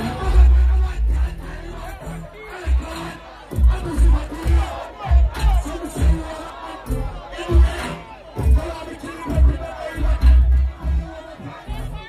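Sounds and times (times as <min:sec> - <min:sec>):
crowd shouting and singing along: 0:00.0 - 0:12.0
dancehall music with heavy bass: 0:00.0 - 0:12.0.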